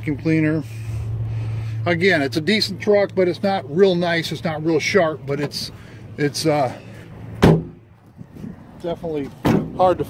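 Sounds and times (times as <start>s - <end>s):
van door slamming: 7.4s - 7.8s, 9.4s - 9.9s.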